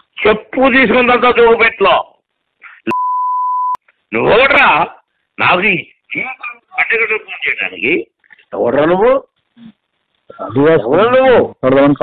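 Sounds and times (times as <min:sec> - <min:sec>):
censor bleep: 0:02.9 - 0:03.8
person speaking on phone call: 0:05.5 - 0:09.2.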